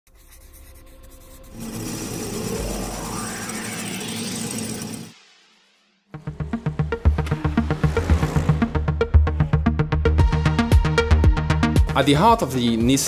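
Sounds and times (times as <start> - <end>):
noisy rush with rising sweep: 1.6 - 9.0.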